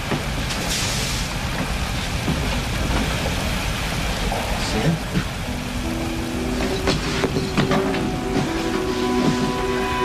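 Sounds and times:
steady rain-like hiss: 0.0s - 10.0s
dramatic orchestral score: 5.5s - 10.0s.

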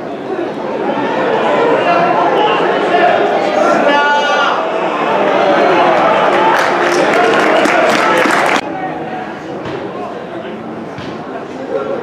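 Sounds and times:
people shouting and calling out: 0.4s - 9.0s.

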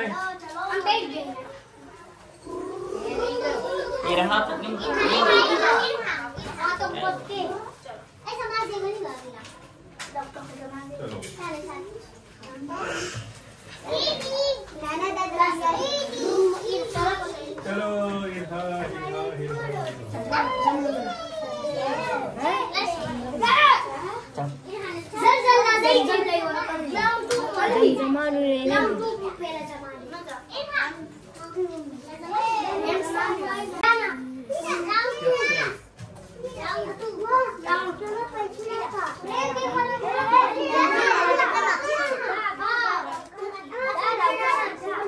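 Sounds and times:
children chattering and calling out: 0.0s - 45.0s.

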